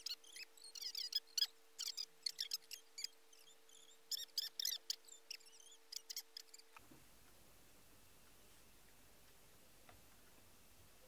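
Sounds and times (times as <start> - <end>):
high-pitched wavering chirps: 0.0 - 6.7
steady low hum: 0.0 - 11.0.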